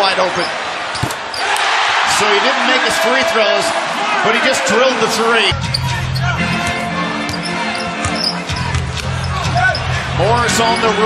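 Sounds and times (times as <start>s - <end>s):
arena crowd noise: 0.0s - 11.0s
arena music: 5.5s - 11.0s
basketball bouncing on hardwood: 6.5s - 9.1s.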